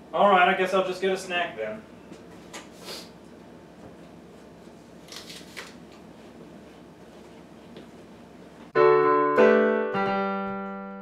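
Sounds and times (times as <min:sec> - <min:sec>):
piano chords: 0:08.7 - 0:11.0.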